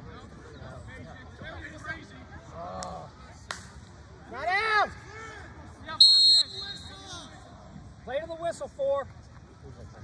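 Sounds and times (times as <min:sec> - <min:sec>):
referee's whistle blast: 0:06.0 - 0:07.1.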